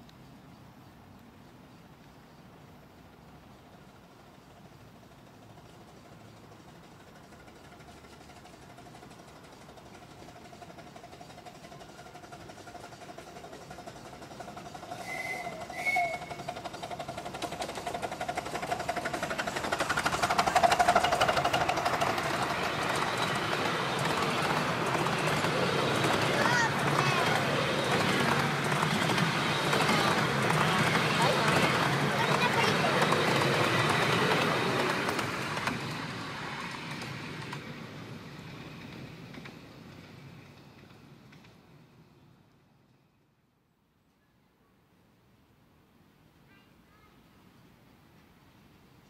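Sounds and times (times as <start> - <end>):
train running on rails: 0.0 - 43.6
miniature steam locomotive running: 2.4 - 43.2
passengers' voices: 13.4 - 36.3
steam whistle toots: 14.9 - 16.5.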